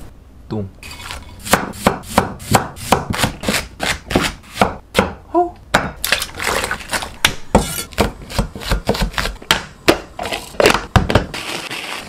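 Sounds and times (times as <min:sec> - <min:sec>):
cleaver chopping on wooden board: 0:01.5 - 0:06.0.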